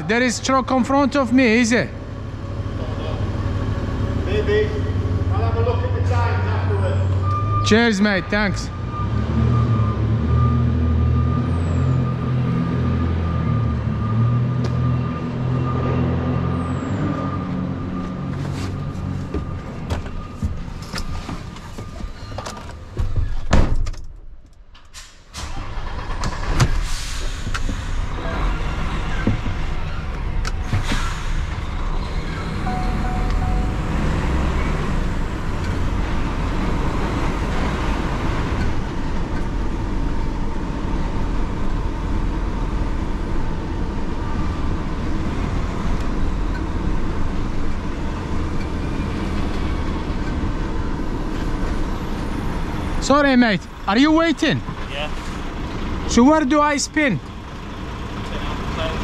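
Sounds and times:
diesel truck engine rumble: 0:25.4 - 0:59.0.

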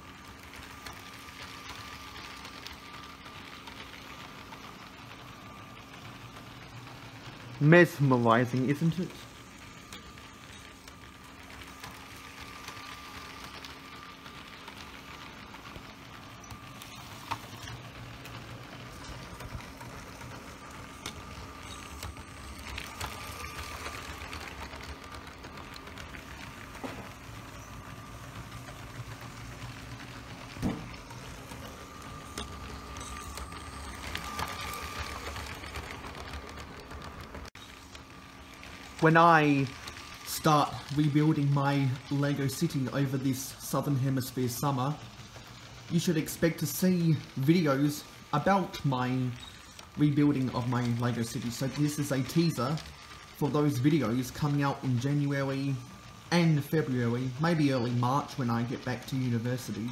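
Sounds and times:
small electric motor whining: 0:00.0 - 0:59.9.

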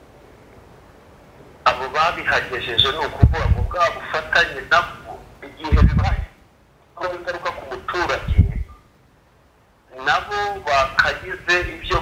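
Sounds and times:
person talking: 0:01.7 - 0:06.4, 0:07.0 - 0:08.7, 0:09.9 - 0:12.0.

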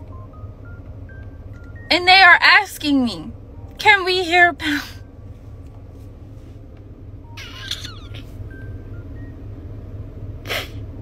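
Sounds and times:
low hum inside a car: 0:00.0 - 0:11.0.

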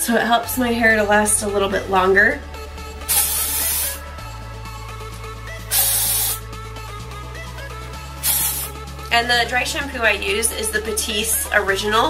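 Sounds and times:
background music: 0:00.0 - 0:12.0
aerosol spray hissing: 0:03.0 - 0:04.1, 0:05.7 - 0:06.4, 0:08.2 - 0:08.9.

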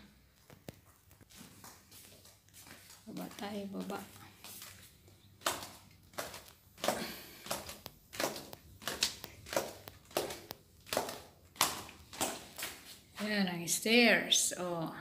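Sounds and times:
footsteps on indoor staircase: 0:00.0 - 0:13.4.

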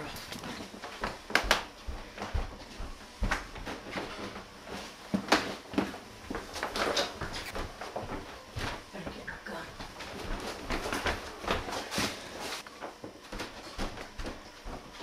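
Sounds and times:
footsteps on wooden floor: 0:00.0 - 0:15.0.

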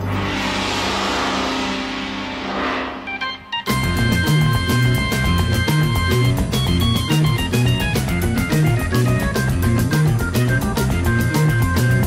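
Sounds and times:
low sustained drone: 0:00.0 - 0:04.4.

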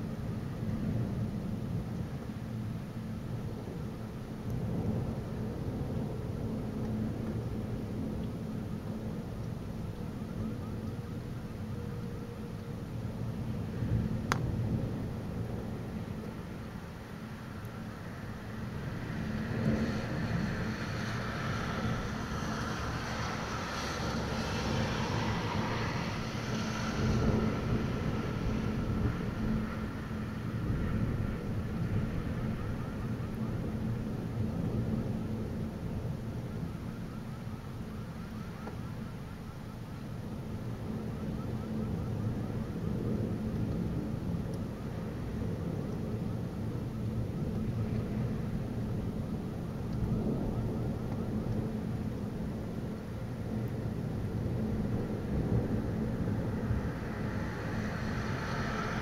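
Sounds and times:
rolling thunder rumbling: 0:00.0 - 0:37.1, 0:40.4 - 0:59.0
steady rain: 0:00.0 - 0:59.0.

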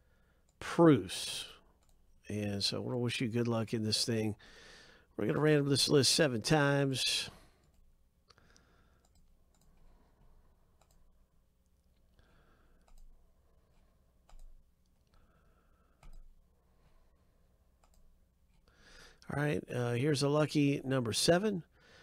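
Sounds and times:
computer mouse clicks: 0:08.5 - 0:09.9, 0:10.8 - 0:11.1, 0:12.8 - 0:15.2, 0:16.0 - 0:16.3, 0:17.8 - 0:18.7.

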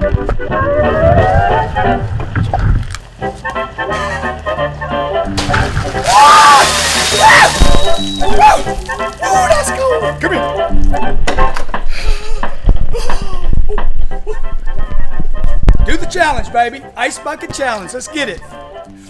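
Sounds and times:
background music: 0:00.0 - 0:19.0
splashing water pouring: 0:05.4 - 0:09.3.

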